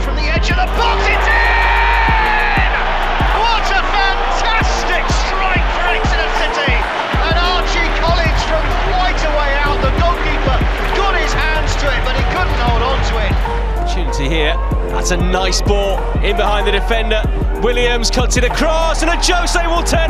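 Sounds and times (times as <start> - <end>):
music with heavy bass beat: 0.0 - 13.7.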